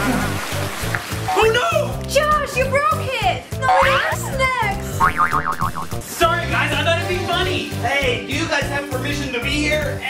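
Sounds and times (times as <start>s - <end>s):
background music: 0.0s - 10.0s
cartoon pitch glides: 3.7s - 4.2s, 5.0s - 6.0s
wobbling boing: 5.0s - 6.0s.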